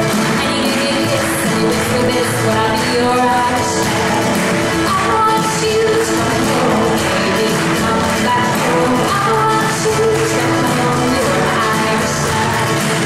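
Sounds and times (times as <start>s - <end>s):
acoustic guitar strumming: 0.0s - 13.0s
frame drum rhythm: 0.0s - 13.0s
woman singing: 0.0s - 13.0s.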